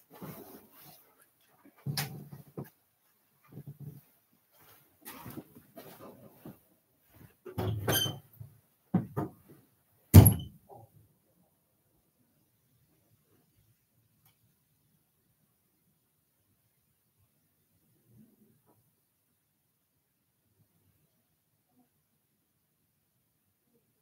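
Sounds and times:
loud thump: 10.2 - 10.5.

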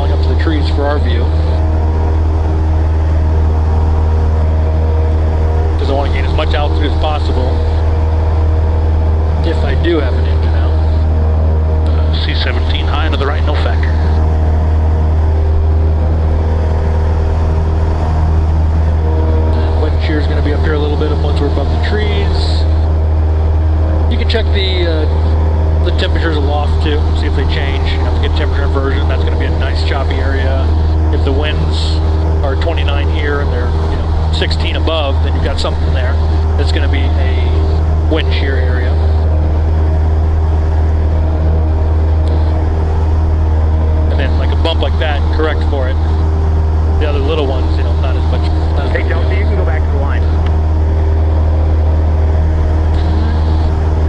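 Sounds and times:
propeller plane engine droning: 0.0 - 54.0.

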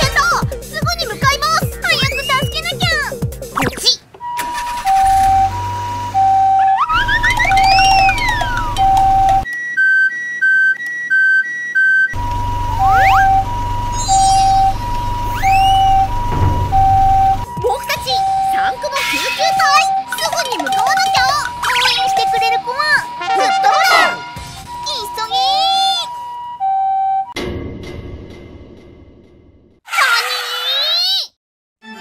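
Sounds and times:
two-tone ambulance siren: 4.2 - 27.4
rising and falling whistle glides: 4.3 - 17.3
fast two-note electronic beeping: 12.2 - 24.9.

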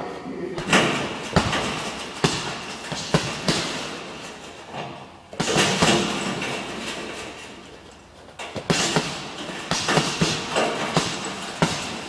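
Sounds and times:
punches hitting heavy bag: 0.6 - 7.3, 8.5 - 12.0.

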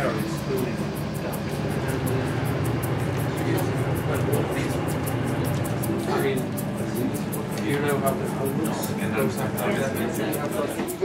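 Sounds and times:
boat machinery humming: 0.0 - 11.0
faint voices: 0.0 - 11.0.

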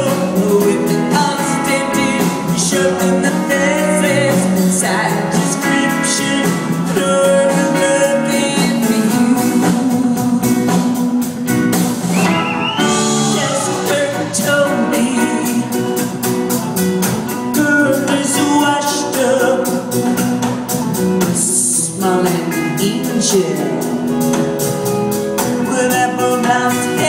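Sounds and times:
woman singing: 0.0 - 11.4, 12.9 - 16.2, 17.5 - 20.2, 21.2 - 24.3, 25.6 - 27.0
bass guitar: 0.0 - 27.0
drums steady beat: 0.0 - 27.0
electric guitars: 0.0 - 27.0.

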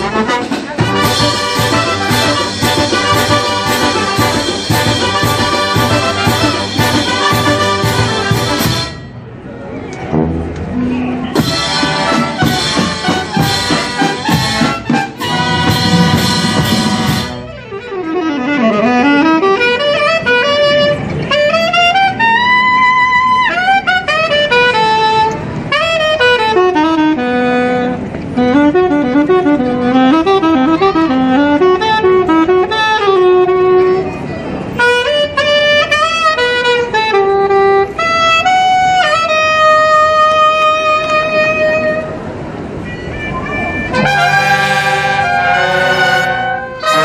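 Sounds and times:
saxophones melody: 0.0 - 9.4, 10.1 - 47.0
wind band playing: 0.0 - 47.0.

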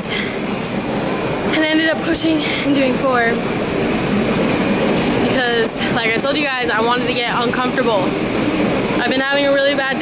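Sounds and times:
loud rushing noise: 0.0 - 10.0.

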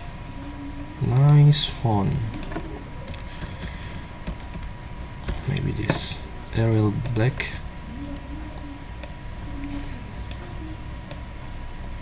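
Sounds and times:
computer keyboard typing: 2.3 - 6.0, 7.0 - 7.4, 9.0 - 11.3.

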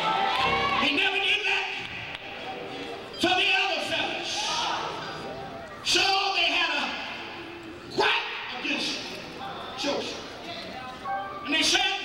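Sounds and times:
preacher shouting over microphone: 0.0 - 2.0.

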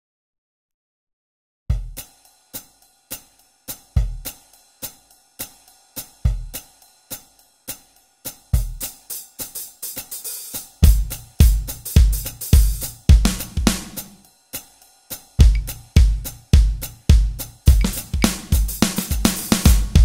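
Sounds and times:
hi-hat strokes: 1.7 - 20.0
bass drum hits: 10.8 - 14.0, 15.4 - 20.0.

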